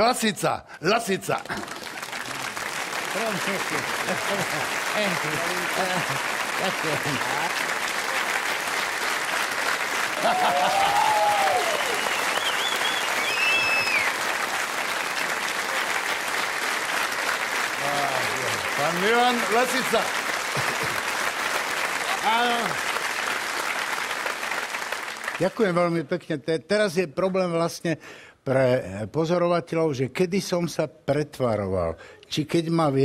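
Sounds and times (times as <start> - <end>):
audience applauding: 1.3 - 26.0.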